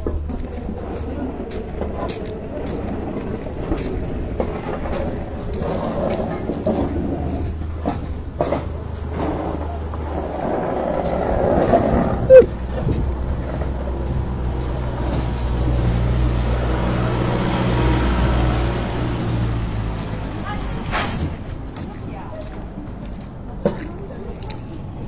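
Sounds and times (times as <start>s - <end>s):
heavy vehicle engine humming: 0.0s - 25.0s.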